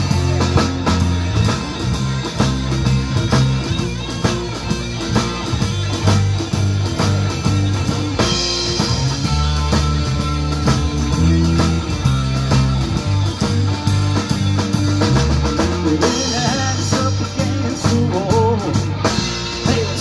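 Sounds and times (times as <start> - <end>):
bass guitar: 0.0 - 20.0
drum kit beat: 0.0 - 20.0
electric guitar: 0.0 - 20.0.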